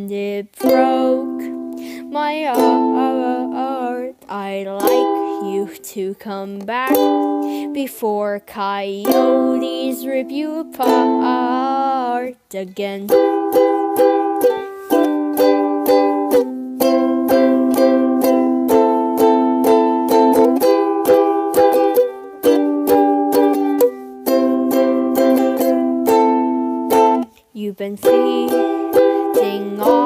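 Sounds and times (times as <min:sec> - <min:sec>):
ukulele strumming: 0:00.0 - 0:30.0.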